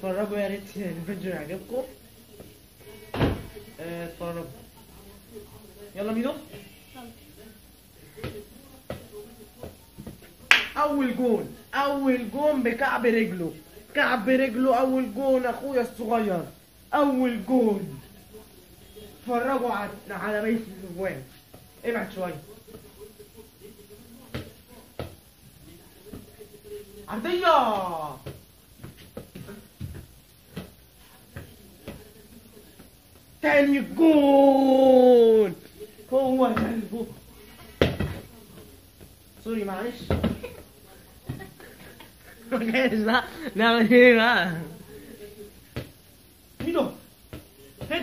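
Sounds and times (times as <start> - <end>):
foot kicking ball: 8.2 - 10.3, 24.3 - 25.2, 28.1 - 32.2, 36.3 - 37.2, 37.8 - 40.6, 46.6 - 48.0.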